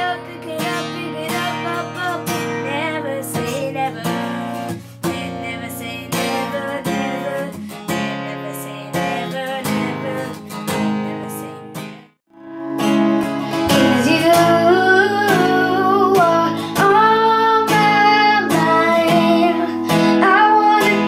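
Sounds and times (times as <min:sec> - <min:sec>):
boy singing: 0:00.0 - 0:04.4, 0:08.1 - 0:10.4, 0:13.6 - 0:21.0
acoustic guitar strumming: 0:00.0 - 0:21.0.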